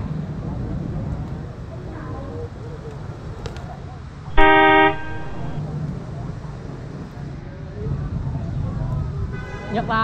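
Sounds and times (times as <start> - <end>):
vehicle horn honk: 4.3 - 5.6.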